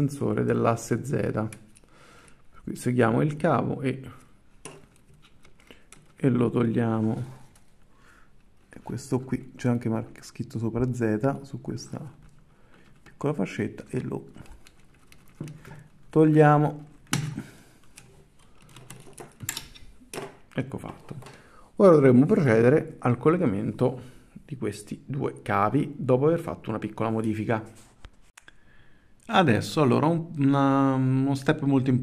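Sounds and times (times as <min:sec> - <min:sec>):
cable sleeve rustling and clicking: 0:01.4 - 0:02.5, 0:04.1 - 0:06.4, 0:07.0 - 0:09.1, 0:11.8 - 0:21.4
wires being handled: 0:04.0 - 0:21.4.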